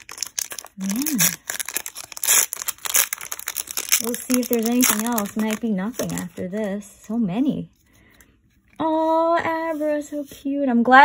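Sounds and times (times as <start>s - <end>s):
foil wrapper being torn open: 0.0s - 6.6s.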